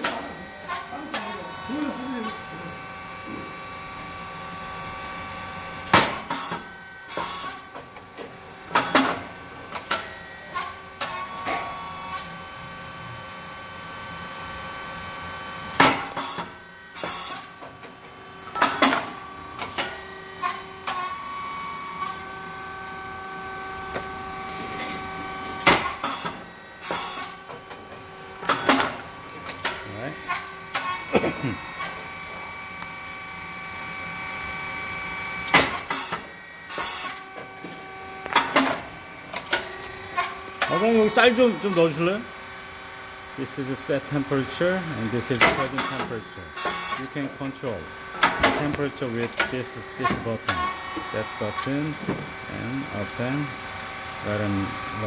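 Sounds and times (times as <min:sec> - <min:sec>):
machine hum with held tones: 0:00.0 - 0:55.0.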